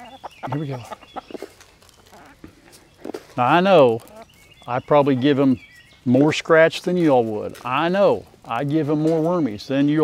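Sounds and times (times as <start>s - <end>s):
hens clucking softly: 0.0s - 5.6s.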